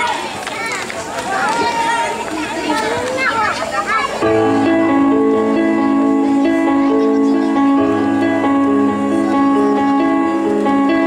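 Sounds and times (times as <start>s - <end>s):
audience chattering: 0.0s - 11.0s.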